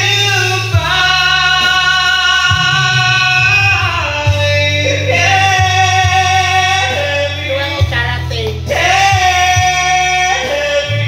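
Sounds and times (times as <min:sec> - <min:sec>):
backing track with bass: 0:00.0 - 0:11.0
man singing karaoke: 0:00.0 - 0:11.0.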